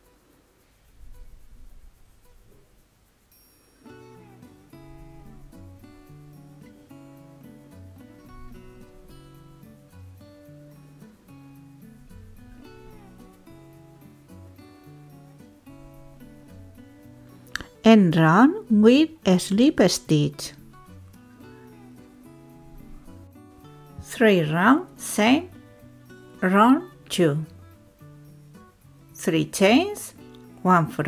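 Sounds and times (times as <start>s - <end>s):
faint low rumble: 0.6s - 3.0s, 3.9s - 9.9s
plucked-string background music: 0.9s - 31.0s.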